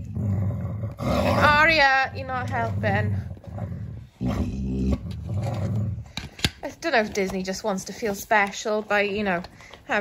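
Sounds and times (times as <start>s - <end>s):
dog grumbling: 0.0s - 6.1s.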